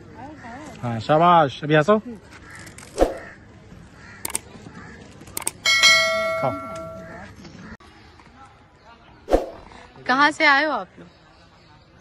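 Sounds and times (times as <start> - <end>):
notification bell ding: 5.7 - 7.2.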